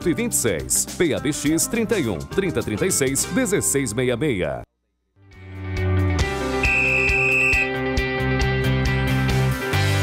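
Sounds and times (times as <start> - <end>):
high held tone: 6.6 - 7.7.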